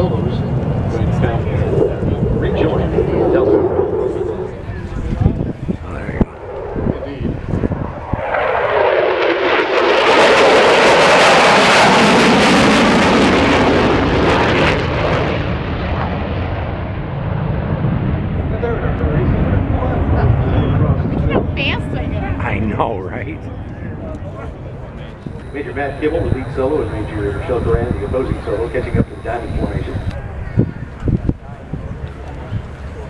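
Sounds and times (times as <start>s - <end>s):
fighter jet roar passing over: 0.0s - 24.0s, 24.6s - 31.0s.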